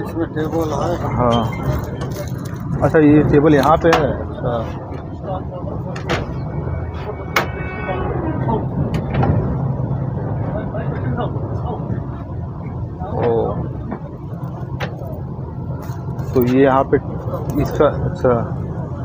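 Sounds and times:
train rumbling inside coach: 0.0s - 19.0s.

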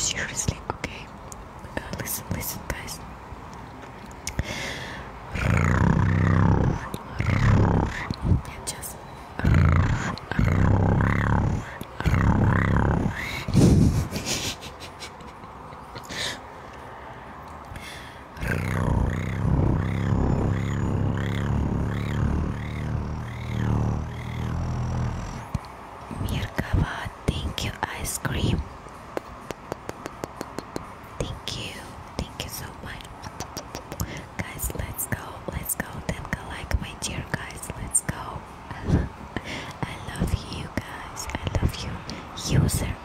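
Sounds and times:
mouth clicks and lip smacks: 3.5s - 4.4s, 29.1s - 31.5s, 32.2s - 34.9s
low wavering hum: 18.3s - 28.7s.

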